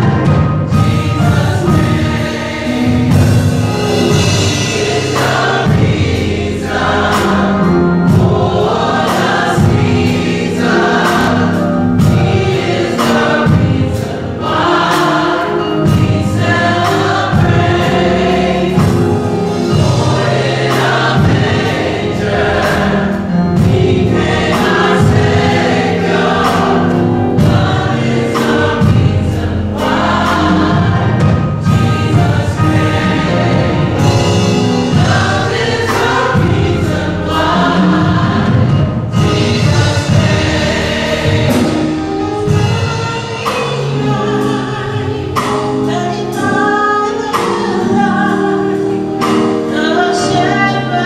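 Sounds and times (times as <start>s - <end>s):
instruments with steady beat: 0.0s - 44.6s
gospel choir singing: 0.0s - 51.0s.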